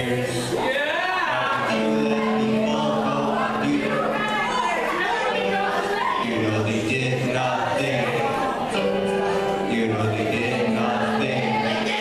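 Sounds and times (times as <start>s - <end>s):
man singing through pa: 0.0s - 4.4s, 5.2s - 12.0s
keyboard accompaniment: 0.0s - 12.0s.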